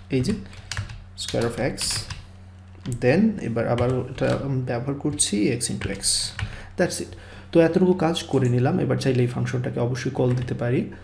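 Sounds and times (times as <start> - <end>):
man speaking: 0.0 - 0.4, 2.9 - 10.9
computer keyboard typing: 0.1 - 2.2, 3.6 - 4.5, 5.1 - 6.6, 10.2 - 10.6.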